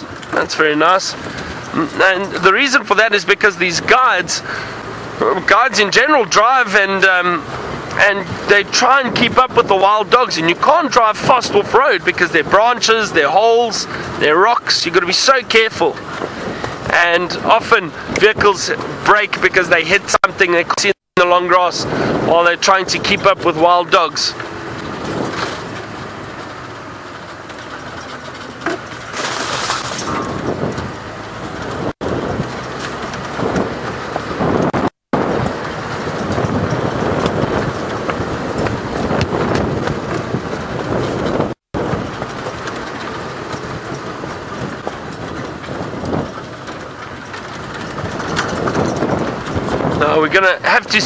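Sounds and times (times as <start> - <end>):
vehicle engine and road rumble: 0.0 - 51.0
bodywork knocks and rattles: 22.1 - 51.0.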